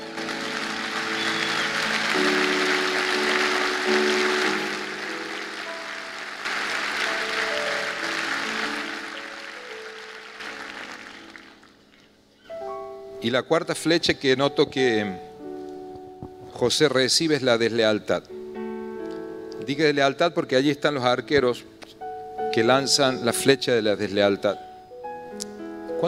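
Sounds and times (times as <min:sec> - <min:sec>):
congregation applauding: 0:00.0 - 0:12.2
soft sustained background music: 0:00.0 - 0:26.0.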